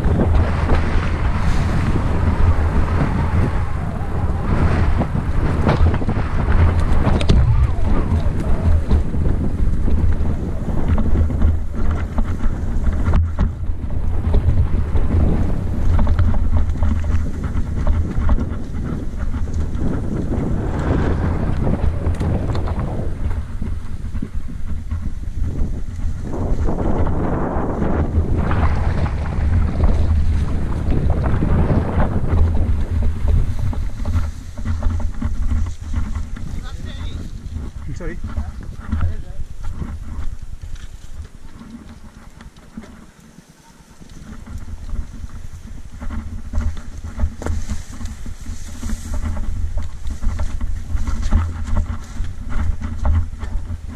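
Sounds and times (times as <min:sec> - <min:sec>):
bike rattling over bumps: 0:00.0 - 0:53.9
deep continuous rumble: 0:00.0 - 0:53.9
wind buffeting microphone: 0:00.0 - 0:53.9
small knocks from bumpy ground: 0:44.0 - 0:53.9.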